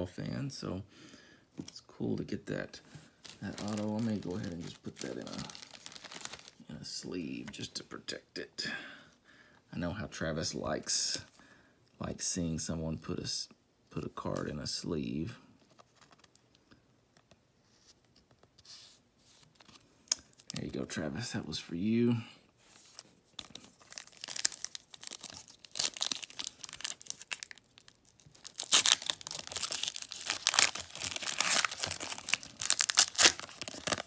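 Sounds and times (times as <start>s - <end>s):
plastic sleeve crinkling: 3.2s - 6.6s, 22.7s - 34.0s.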